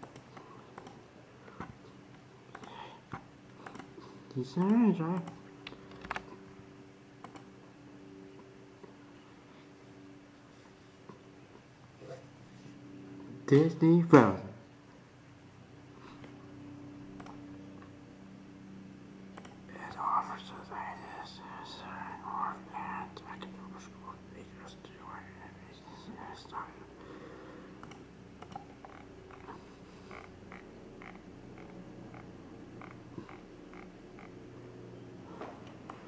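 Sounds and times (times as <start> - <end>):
steady low hum: 0.0 - 36.0
faint whispered voice: 19.7 - 27.0.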